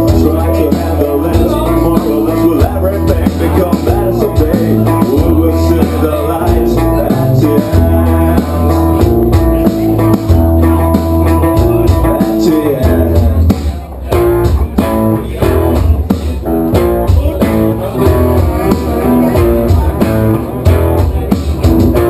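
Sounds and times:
bass guitar: 0:00.0 - 0:22.0
drum kit: 0:00.0 - 0:22.0
electric guitars: 0:00.0 - 0:22.0.

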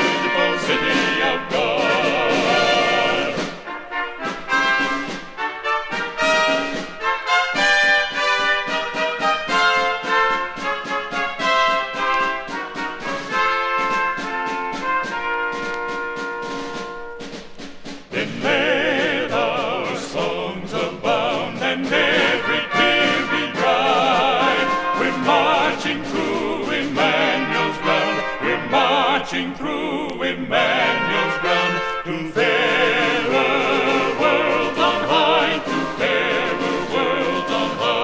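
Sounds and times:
men singing with vibrato: 0:00.0 - 0:03.8, 0:18.1 - 0:38.0
trumpet trio playing hymn tune: 0:00.0 - 0:17.5, 0:20.8 - 0:29.6, 0:30.5 - 0:38.0
drum strokes: 0:00.0 - 0:38.0.

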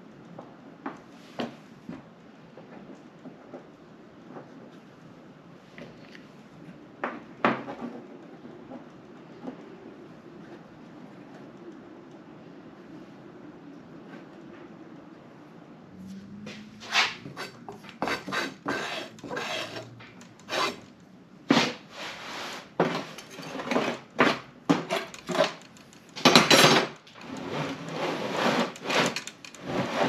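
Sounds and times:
sand scraping in wooden flask: 0:16.8 - 0:20.8, 0:21.5 - 0:24.1, 0:27.3 - 0:30.0.

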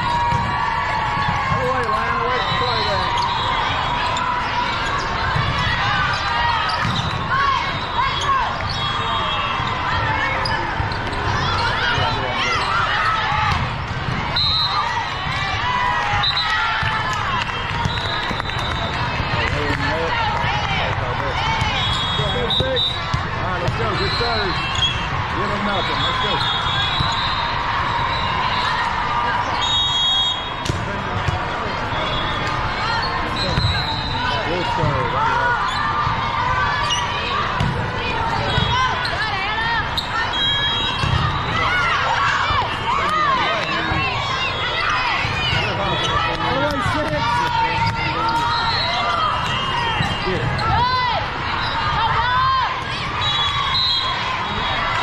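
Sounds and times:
volleyballs hit and bouncing: 0:00.1 - 0:03.0, 0:04.6 - 0:07.4, 0:13.2 - 0:25.8, 0:30.5 - 0:33.8, 0:37.2 - 0:39.4, 0:45.2 - 0:50.8
voices talking and calling: 0:17.9 - 0:55.0.

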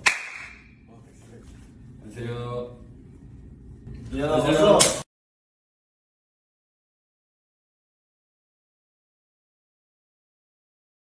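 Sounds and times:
handshake slap: 0:00.0 - 0:00.6, 0:04.8 - 0:05.1.

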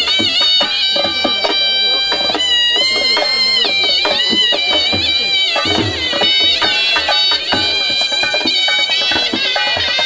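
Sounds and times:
dhol drum beats: 0:00.0 - 0:10.0
paired folk flutes melody: 0:00.0 - 0:10.0.

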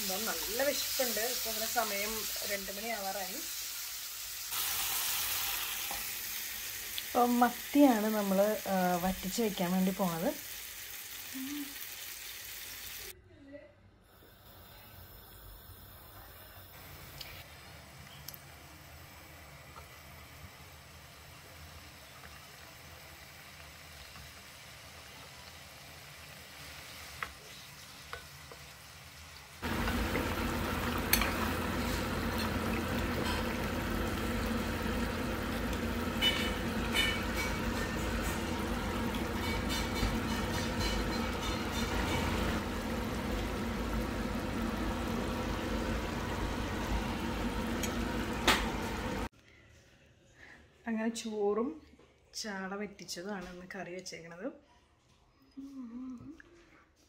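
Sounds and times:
curry bubbling and sizzling: 0:19.8 - 0:49.3.

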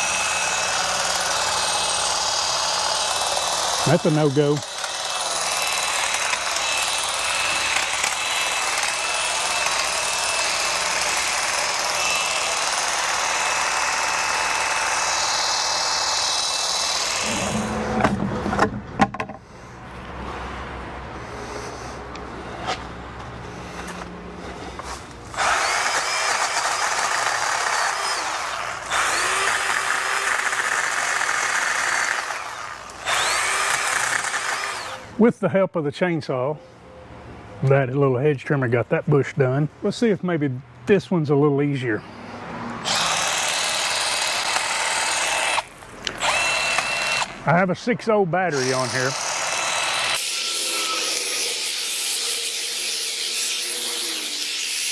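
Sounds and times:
chainsaw running: 0:00.0 - 0:18.2, 0:25.3 - 0:35.2, 0:42.8 - 0:47.5, 0:48.4 - 0:54.9
hedge trimmer cutting brush: 0:00.0 - 0:18.2, 0:23.7 - 0:35.2, 0:42.8 - 0:47.6, 0:48.4 - 0:54.9.

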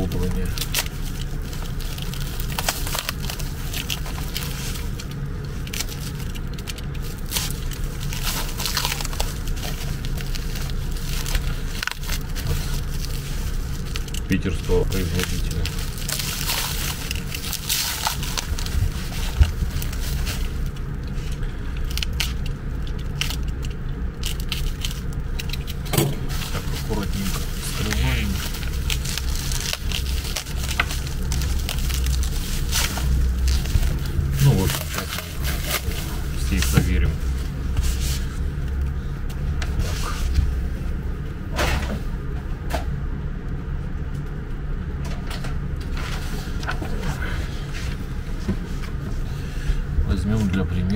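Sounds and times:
plastic wrapping crinkling and tearing: 0:00.0 - 0:40.8
steady low hum: 0:00.0 - 0:50.9.

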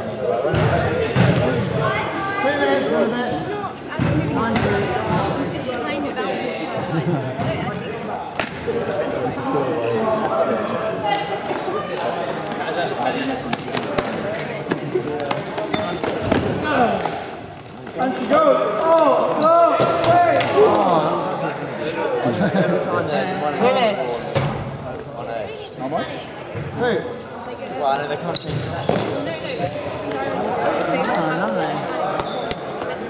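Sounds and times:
players' voices and calls: 0:00.0 - 0:33.0
trainers squeaking: 0:28.3 - 0:30.4.

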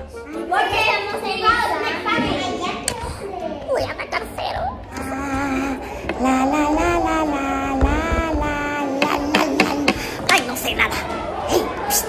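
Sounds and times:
children talking and chattering: 0:00.0 - 0:12.0.

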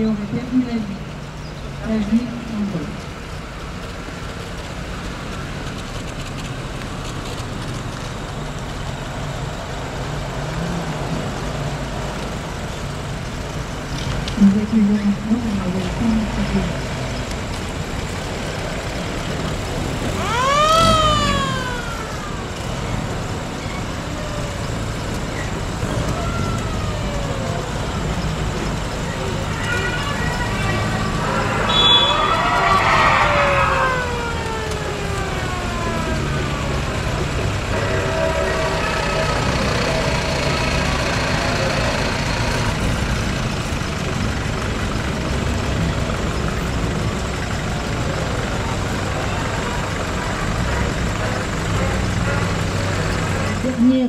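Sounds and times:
jeep engines driving past: 0:00.0 - 0:54.0.

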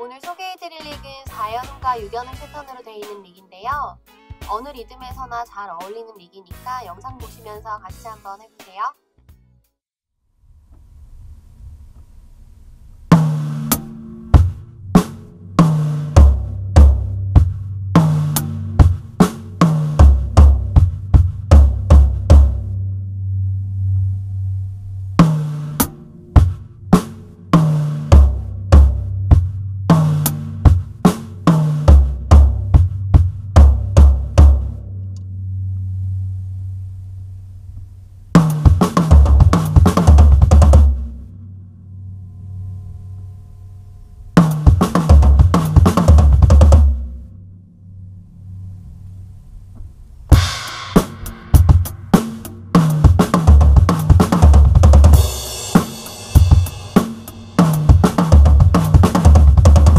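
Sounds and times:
acoustic drum kit playing: 0:00.0 - 0:09.4, 0:13.0 - 0:23.2, 0:25.0 - 0:35.2, 0:38.3 - 0:41.4, 0:44.4 - 0:47.3, 0:50.3 - 0:59.9.

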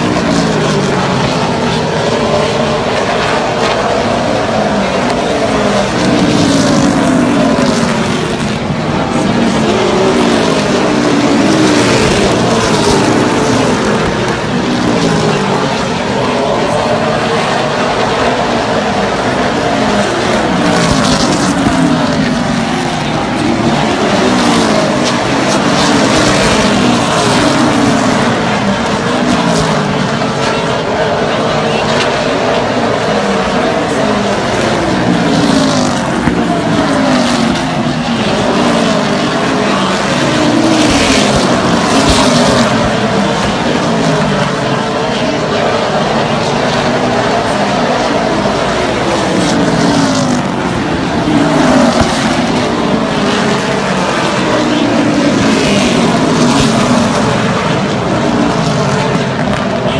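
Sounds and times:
stock car engines passing: 0:00.0 - 0:59.9.

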